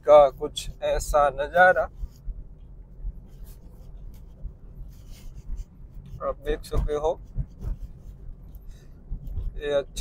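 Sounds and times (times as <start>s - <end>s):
car road and engine rumble: 0.0s - 10.0s
faint scratchy rustling: 0.0s - 10.0s.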